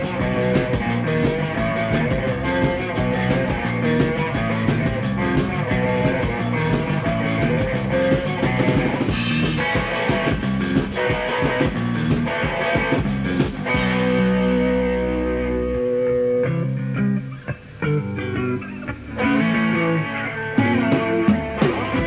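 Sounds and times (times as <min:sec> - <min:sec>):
bass guitar: 0:00.0 - 0:22.0
electric guitar: 0:00.0 - 0:22.0
punk rock band playing: 0:00.0 - 0:22.0.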